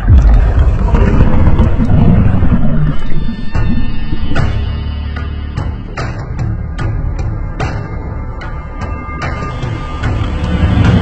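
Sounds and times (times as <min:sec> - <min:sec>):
loud deep rumbling: 0:00.0 - 0:07.4.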